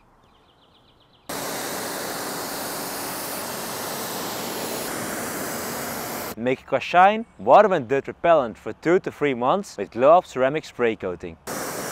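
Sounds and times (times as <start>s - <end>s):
pressure washer spraying car: 1.3s - 6.4s, 11.5s - 11.9s.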